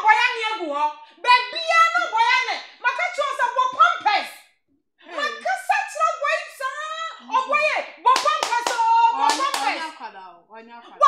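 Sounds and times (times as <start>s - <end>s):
hand claps: 8.2s - 9.9s.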